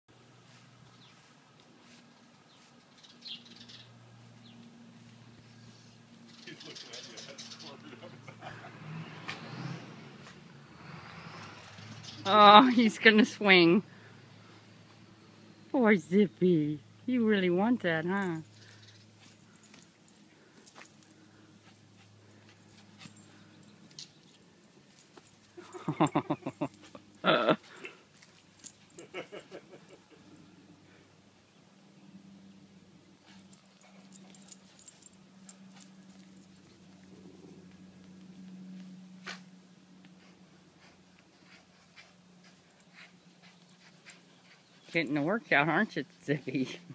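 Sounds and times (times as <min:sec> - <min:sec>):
light metallic jingling: 0:17.7 - 0:30.5, 0:33.2 - 0:38.5, 0:42.4 - 0:46.9.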